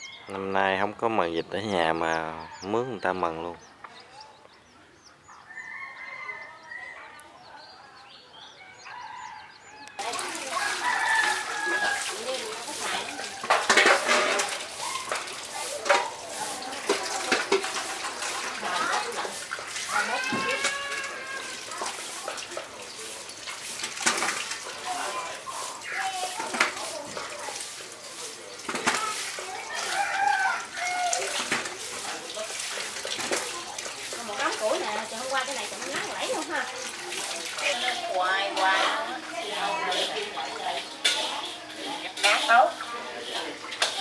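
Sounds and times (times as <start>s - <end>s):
tap water splashing: 9.9s - 44.0s
leaves and bowls clattering: 10.0s - 44.0s.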